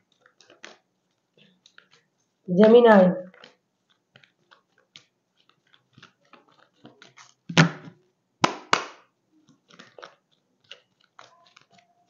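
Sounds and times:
cards flicking and rustling: 3.4s - 12.0s.

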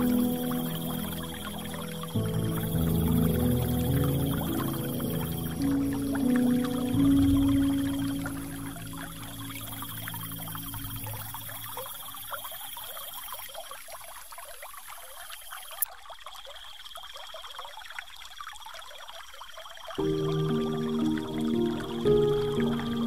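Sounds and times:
gentle music: 0.0s - 12.8s, 20.0s - 23.0s
water trickling and pouring: 0.0s - 23.0s.

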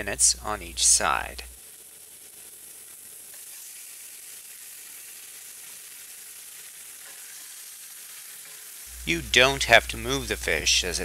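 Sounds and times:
fish sizzling in a skillet: 1.0s - 11.0s.

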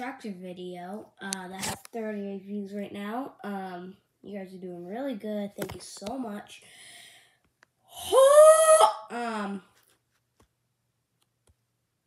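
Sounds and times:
boy squealing: 8.0s - 9.6s.

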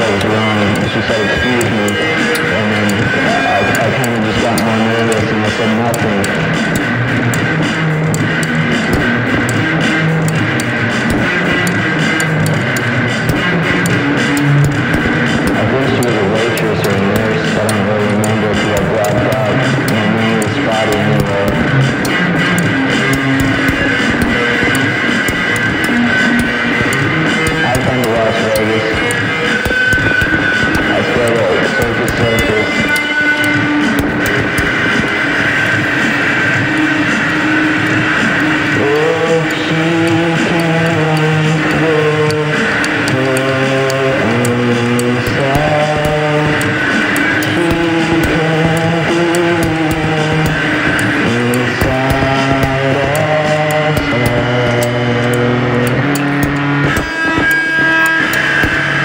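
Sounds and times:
bass guitar: 0.0s - 59.0s
distorted psych rock song: 0.0s - 59.0s
guitars: 0.0s - 59.0s
high ticks: 0.0s - 59.0s
steady beat: 0.0s - 59.0s.

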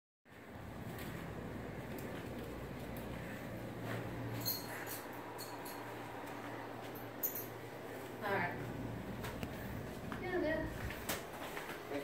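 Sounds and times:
room noise: 0.3s - 12.0s.

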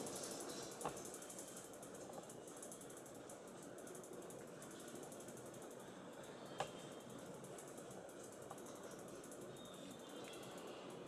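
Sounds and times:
rapid mechanical ticking: 0.0s - 11.0s.

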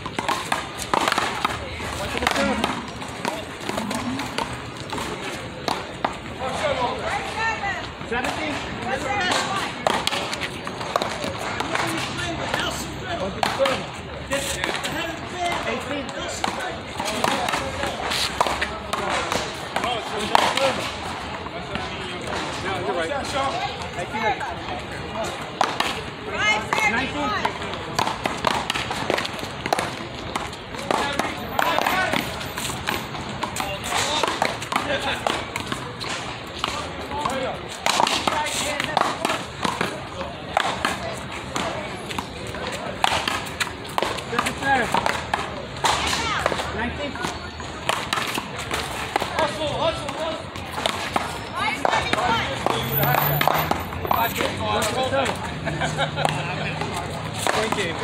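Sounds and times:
ball hit with wooden paddles: 0.0s - 7.4s, 8.0s - 12.8s, 27.4s - 54.6s
people talking: 0.1s - 58.0s.

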